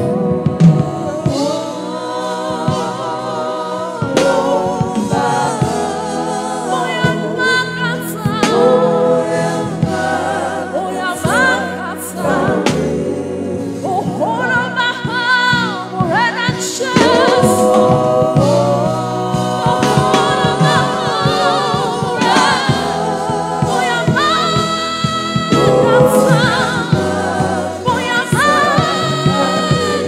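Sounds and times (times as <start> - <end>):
woman singing with vibrato: 0.0 - 12.7, 13.9 - 30.0
backing singers: 0.0 - 30.0
musical accompaniment: 0.0 - 30.0.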